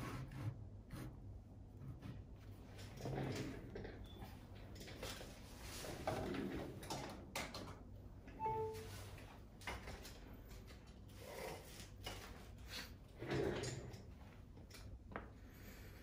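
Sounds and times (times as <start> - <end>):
falling two-note electronic beep: 8.4 - 9.0.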